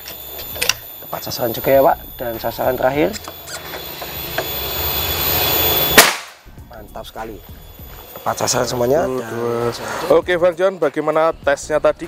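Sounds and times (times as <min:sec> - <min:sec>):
steady rushing noise: 0:00.0 - 0:12.0
air rifle shot crack: 0:05.9 - 0:06.5.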